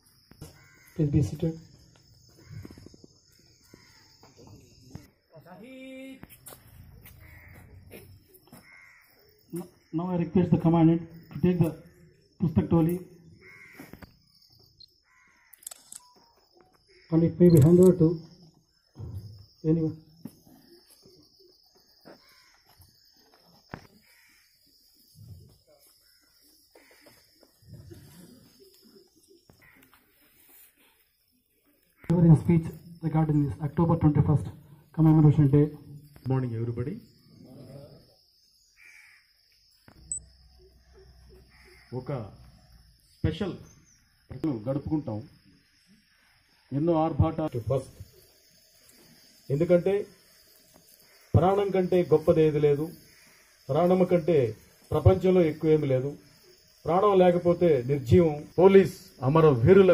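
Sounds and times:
bird cawing: 0:00.4 - 0:01.1, 0:02.2 - 0:05.1, 0:07.0 - 0:10.0, 0:13.3 - 0:14.2, 0:15.0 - 0:15.6, 0:16.9 - 0:17.2, 0:22.1 - 0:22.8, 0:23.8 - 0:24.8, 0:26.0 - 0:30.3, 0:38.8 - 0:42.6, 0:52.7 - 0:54.2
sharp click: 0:15.5 - 0:16.2, 0:17.5 - 0:18.0
high chirp: 0:39.9 - 0:41.1.

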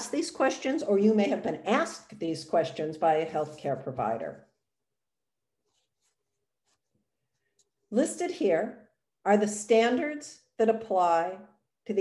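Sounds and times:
woman speaking: 0:00.0 - 0:04.4, 0:07.9 - 0:12.0.

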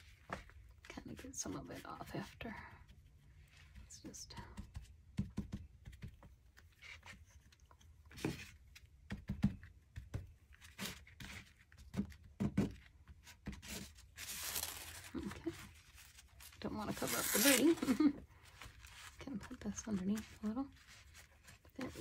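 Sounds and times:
paper crinkling: 0:13.7 - 0:22.0.

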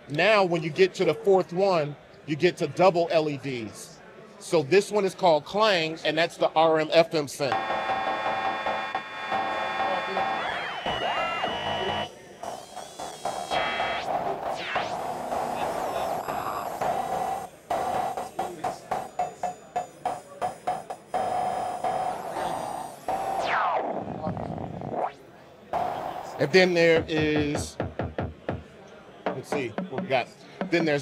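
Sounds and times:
falling synth sweep: 0:07.6 - 0:18.2, 0:21.3 - 0:25.2
ringing metallic synth drum tones: 0:10.3 - 0:23.8, 0:25.8 - 0:28.7, 0:29.3 - 0:31.0.

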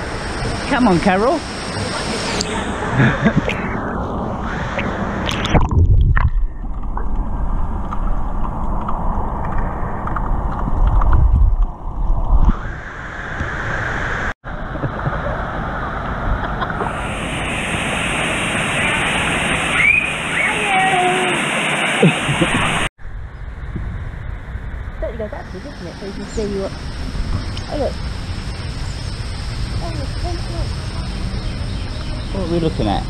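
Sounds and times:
water sloshing and gurgling: 0:01.4 - 0:12.7.

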